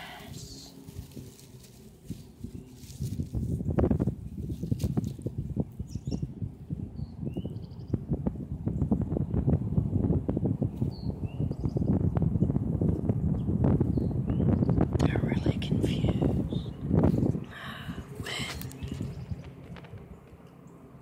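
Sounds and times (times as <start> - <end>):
fingers scratching through grass: 0.0 - 5.7.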